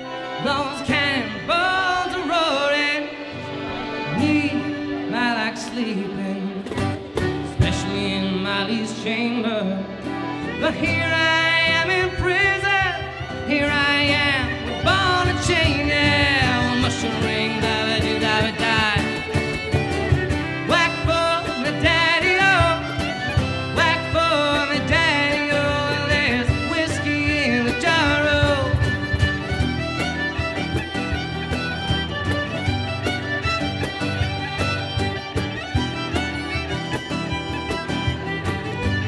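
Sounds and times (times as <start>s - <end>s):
fiddle melody: 0.0s - 39.0s
strummed acoustic guitar: 0.0s - 39.0s
cajon beat: 6.5s - 9.0s, 10.0s - 39.0s.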